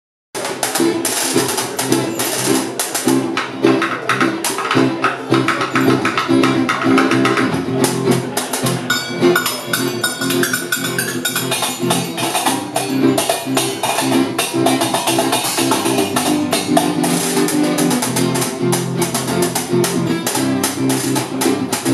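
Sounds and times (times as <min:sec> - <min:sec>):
acoustic guitar strumming: 0:00.4 - 0:21.9
percussion: 0:00.4 - 0:21.9
held higher melodic line: 0:08.8 - 0:17.4.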